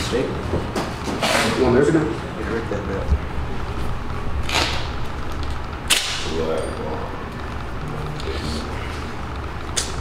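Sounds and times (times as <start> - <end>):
tape ripping off roll: 4.4 - 4.9.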